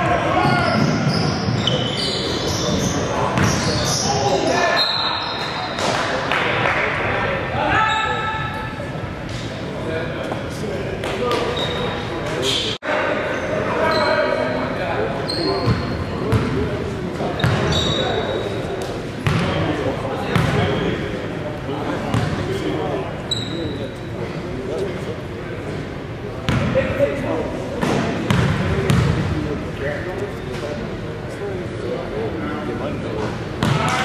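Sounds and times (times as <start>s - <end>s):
players' voices: 0.0s - 34.0s
sneaker squeaks: 0.1s - 6.0s, 7.7s - 8.7s, 11.2s - 14.6s, 15.2s - 16.6s, 17.2s - 18.6s, 23.2s - 24.0s.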